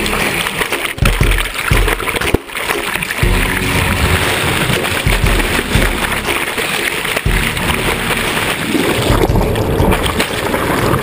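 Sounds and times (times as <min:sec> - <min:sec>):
muffled underwater water rushing: 0:00.0 - 0:11.0.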